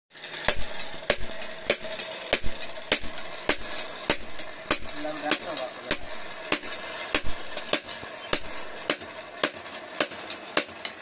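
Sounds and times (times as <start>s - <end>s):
hammer striking anvil: 0.4s - 11.0s.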